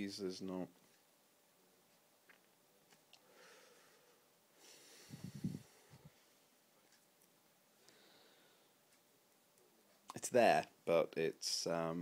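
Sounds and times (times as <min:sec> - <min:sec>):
breath puffing onto microphone: 0:04.7 - 0:06.2.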